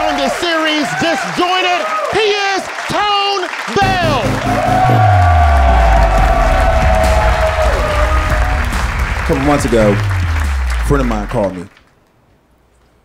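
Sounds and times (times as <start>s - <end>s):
applause: 0.0s - 12.0s
band playing: 3.8s - 11.5s
deep sliding bass note: 3.8s - 11.6s.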